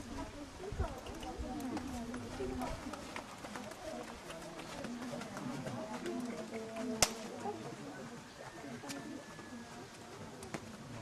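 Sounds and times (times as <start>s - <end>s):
people talking: 0.0s - 11.0s
horse hooves trotting on dirt: 0.8s - 11.0s.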